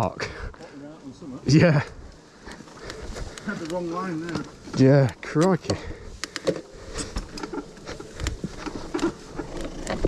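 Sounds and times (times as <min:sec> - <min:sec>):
mountain bike rattling over rocks: 0:06.5 - 0:10.0.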